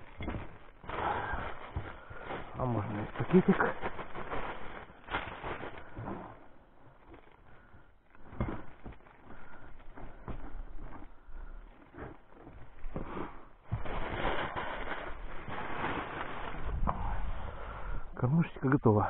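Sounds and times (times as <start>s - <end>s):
crinkling and rustling: 0.0s - 17.3s.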